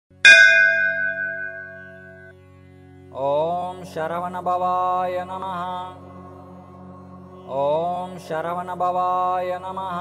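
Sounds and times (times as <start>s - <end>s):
low drone: 0.2s - 2.4s
bell ringing: 0.3s - 2.3s.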